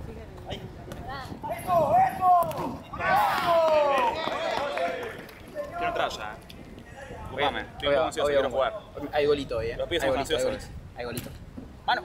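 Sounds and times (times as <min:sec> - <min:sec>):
players shouting: 0:01.4 - 0:06.1.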